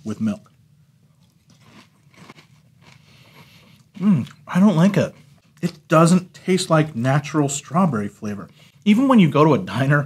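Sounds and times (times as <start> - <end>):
faint chewing of cereal: 0.1 - 6.0.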